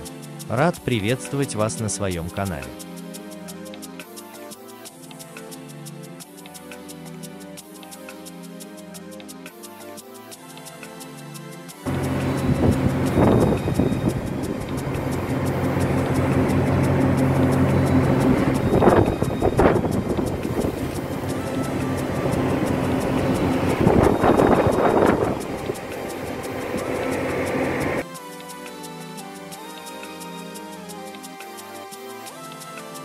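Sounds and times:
boat engine drone: 0:11.8 - 0:28.0
wind on microphone: 0:11.9 - 0:28.0.

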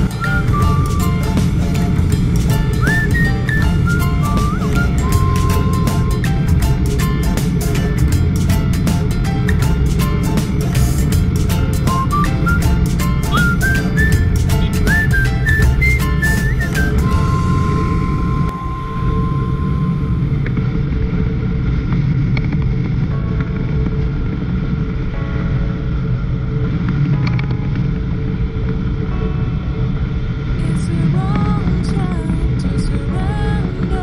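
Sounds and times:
faint music: 0:00.0 - 0:34.0
wind and road noise from motorcycle: 0:00.0 - 0:34.0.

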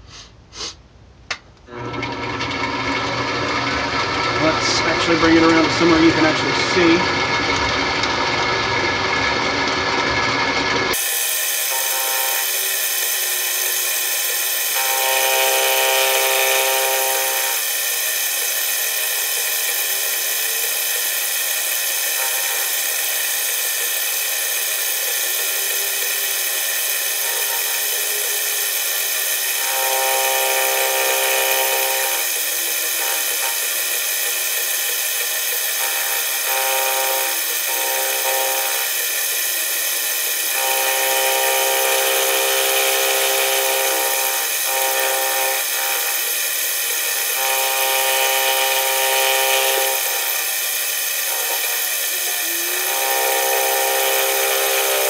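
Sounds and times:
milling machine cutting metal: 0:01.7 - 0:55.0.

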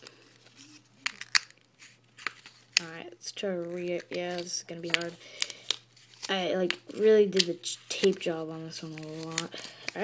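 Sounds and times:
paper and tape crinkling: 0:03.6 - 0:10.0.

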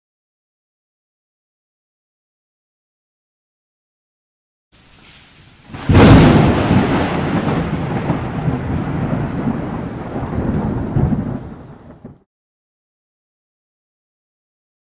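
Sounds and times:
rain hiss: 0:04.8 - 0:12.0
thunderclap and rumble: 0:05.6 - 0:12.2.

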